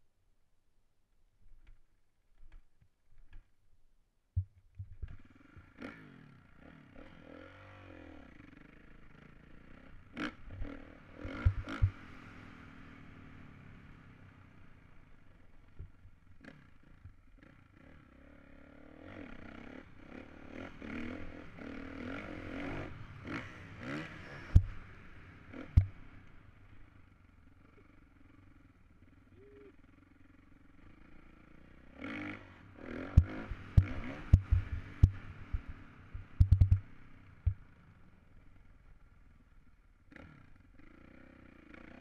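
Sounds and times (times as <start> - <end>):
dirt bike engine revving: 5.2 - 14.7, 16.4 - 26.6, 29.9 - 37.7.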